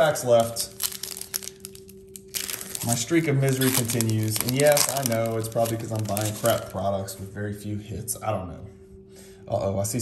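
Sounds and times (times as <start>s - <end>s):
foil pack crinkling torn open: 0.2s - 6.9s.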